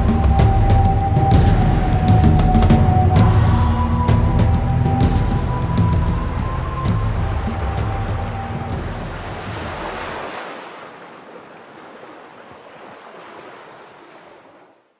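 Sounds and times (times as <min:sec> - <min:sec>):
dramatic music with percussive strikes: 0:00.0 - 0:10.2
sea waves washing: 0:00.0 - 0:14.9.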